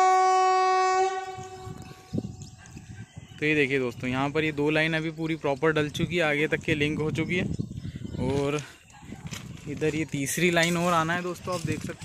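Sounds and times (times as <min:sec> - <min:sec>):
locomotive horn: 0:00.0 - 0:01.8.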